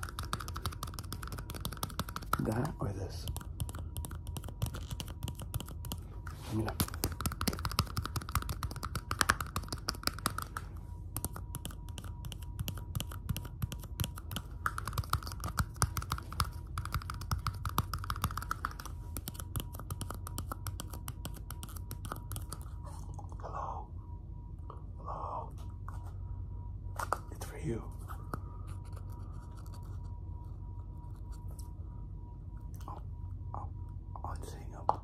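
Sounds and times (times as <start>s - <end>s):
fingernails tapping plastic cups: 0.0s - 6.0s, 6.8s - 10.6s, 11.2s - 22.6s.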